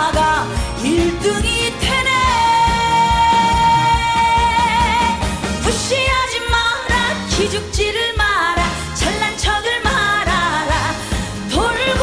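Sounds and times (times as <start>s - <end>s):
band playing a steady beat: 0.0s - 12.0s
woman singing into a microphone: 0.0s - 12.0s.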